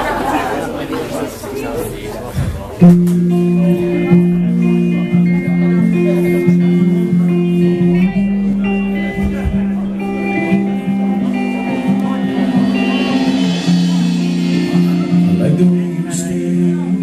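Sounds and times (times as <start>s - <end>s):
low bass notes: 2.8s - 17.0s
picked guitar notes: 2.8s - 17.0s.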